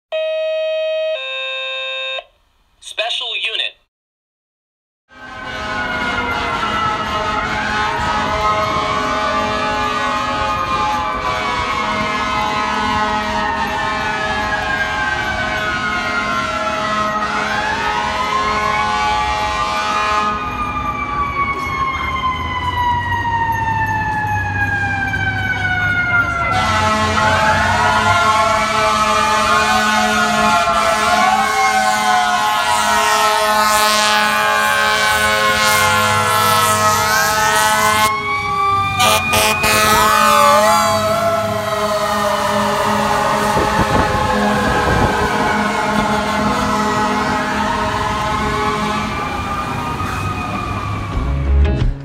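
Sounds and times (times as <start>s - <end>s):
electronic two-tone alert: 0.2s - 2.2s
busy street traffic: 2.8s - 3.7s, 5.1s - 52.0s.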